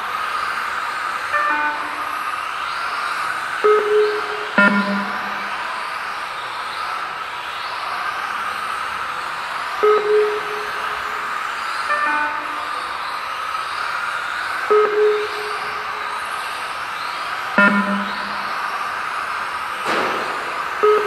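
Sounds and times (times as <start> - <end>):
electronic lap timer beep: 1.3 - 2.8, 3.5 - 6.9, 9.8 - 21.0
rc car motors whining: 5.6 - 9.8, 12.7 - 14.7, 15.6 - 17.6.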